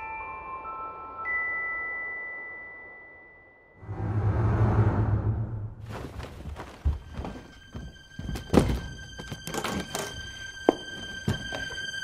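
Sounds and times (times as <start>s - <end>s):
suitcase thunk on wooden floor: 8.3s - 10.1s.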